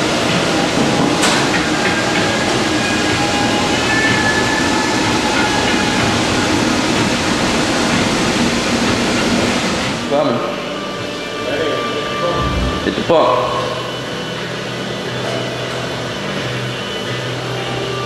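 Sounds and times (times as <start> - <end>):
rattling rumbling mechanical din: 12.3 - 13.8.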